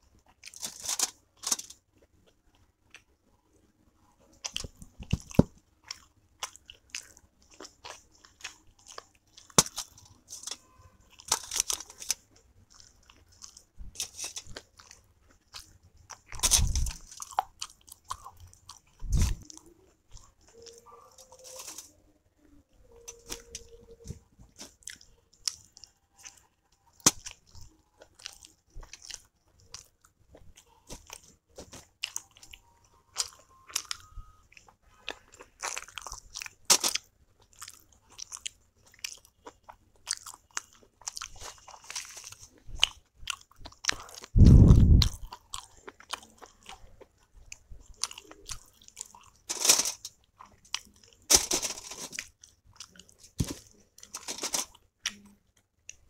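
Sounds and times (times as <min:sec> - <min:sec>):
wet chewing mouth sounds: 0:34.5 - 0:49.4.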